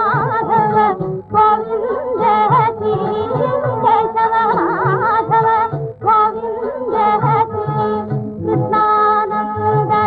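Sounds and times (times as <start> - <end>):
woman singing devotional song: 0.0 - 10.0.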